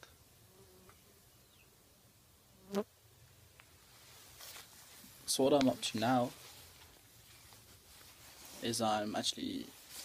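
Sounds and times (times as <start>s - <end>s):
fly buzzing: 0.4s - 1.6s, 2.5s - 2.9s.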